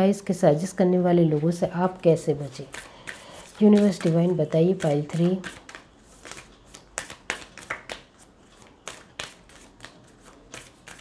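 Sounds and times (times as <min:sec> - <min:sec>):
cards being shuffled: 0:02.6 - 0:11.0.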